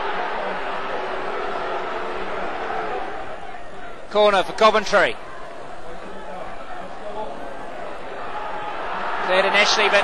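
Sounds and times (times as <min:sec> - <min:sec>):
stadium crowd hubbub: 0:00.0 - 0:10.0.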